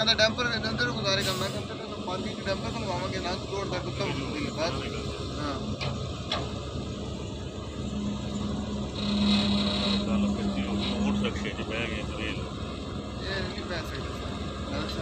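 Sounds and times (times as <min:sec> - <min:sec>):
diesel engine running: 0:00.0 - 0:15.0
steady droning tone: 0:03.5 - 0:15.0
background voices: 0:07.7 - 0:15.0.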